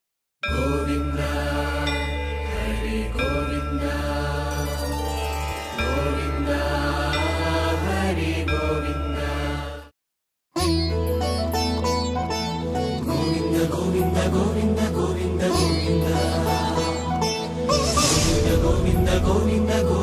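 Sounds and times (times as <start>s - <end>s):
chanted mantra: 0.5s - 4.8s, 18.1s - 20.0s.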